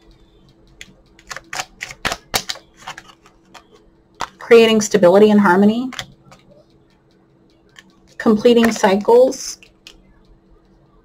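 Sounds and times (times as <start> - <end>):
cards being shuffled: 0.8 - 4.4.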